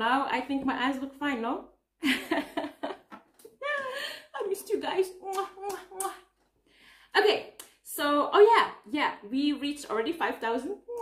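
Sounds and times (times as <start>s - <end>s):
woman blowing kisses: 5.1s - 6.3s.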